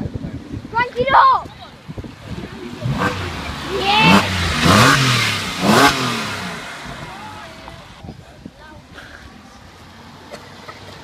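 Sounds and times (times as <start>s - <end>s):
car engine revving past: 2.2s - 8.0s.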